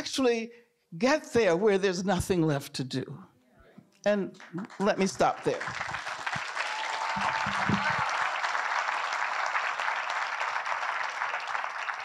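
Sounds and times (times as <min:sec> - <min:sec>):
audience applauding: 0:04.4 - 0:12.0.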